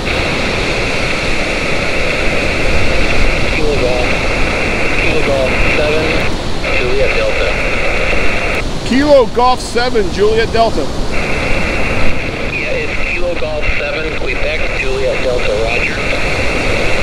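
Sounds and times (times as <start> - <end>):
radio receiver hiss: 0.0 - 17.0
distant voice over radio: 1.6 - 16.5.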